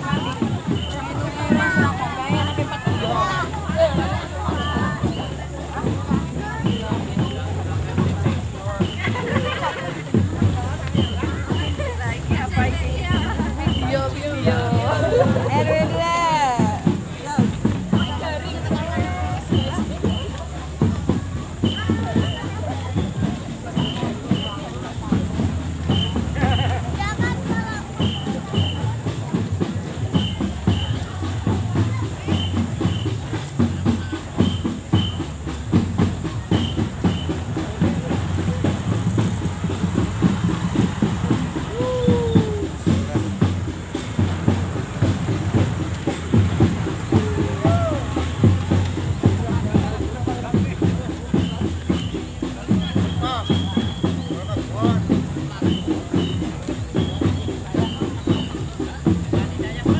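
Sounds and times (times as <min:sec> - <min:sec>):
crowd chatter: 0:00.0 - 0:59.9
marching drums beating: 0:00.0 - 0:59.9.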